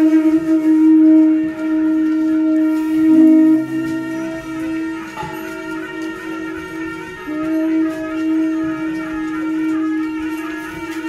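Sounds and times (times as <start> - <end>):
higher held tone: 0.0 - 10.9
wind instruments holding long note: 0.0 - 11.0.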